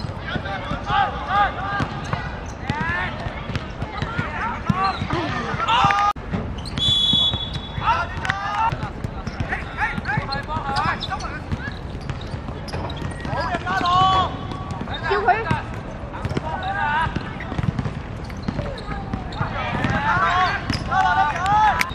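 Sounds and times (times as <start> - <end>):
players shouting: 0.1 - 6.2, 7.0 - 21.9
referee's whistle blast: 6.7 - 7.9.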